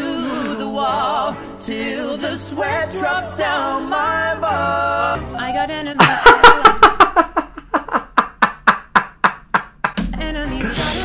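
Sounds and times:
man laughing: 0:06.0 - 0:10.0.

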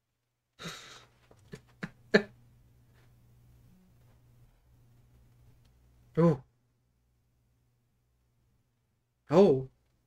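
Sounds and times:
man chuckling quietly: 0:00.6 - 0:02.4.

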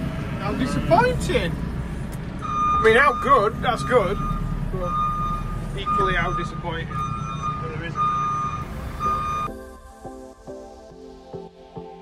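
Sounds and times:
reversing alarm beeping: 0:02.4 - 0:09.6
background music: 0:08.0 - 0:12.0.

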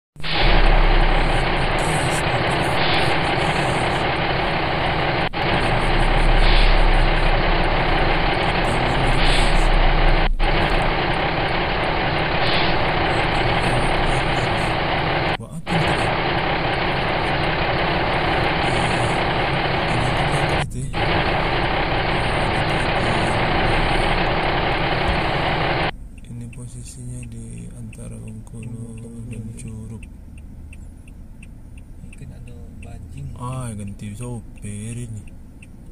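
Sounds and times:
vehicle engine humming: 0:00.2 - 0:35.9.

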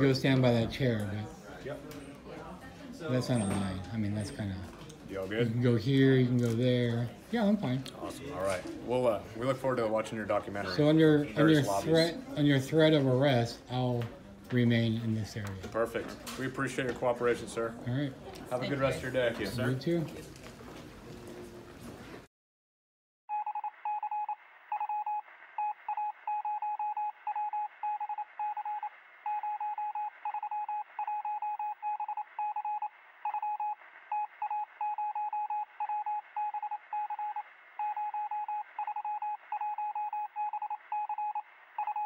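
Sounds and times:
morse code beep tone: 0:23.3 - 0:42.0.

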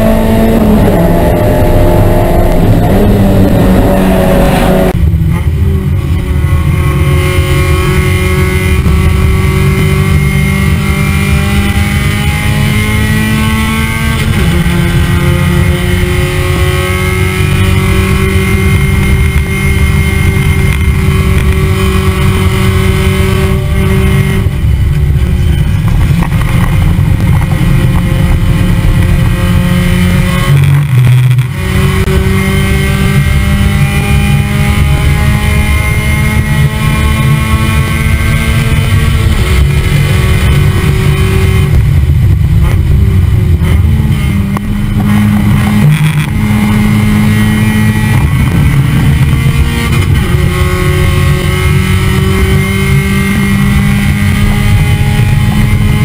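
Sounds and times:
race car engine accelerating: 0:00.0 - 0:56.0.

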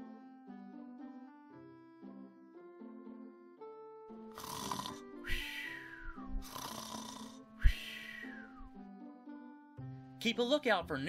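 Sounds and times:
soft background music: 0:00.0 - 0:11.0
cartoon snoring and whistle: 0:04.3 - 0:08.7.

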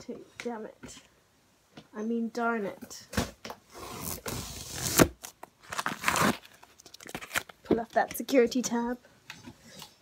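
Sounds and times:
paper sticker tearing and scraping: 0:03.8 - 0:07.5.

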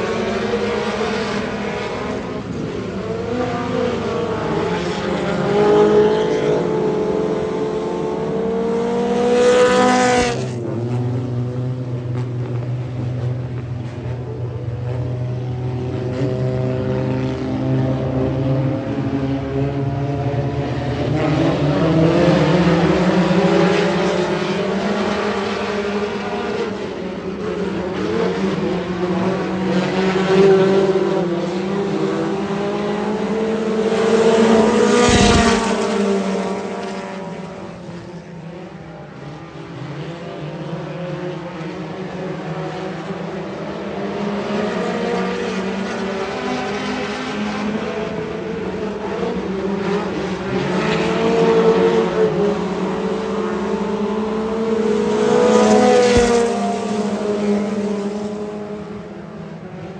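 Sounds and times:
stock car engines racing: 0:00.0 - 0:59.9.

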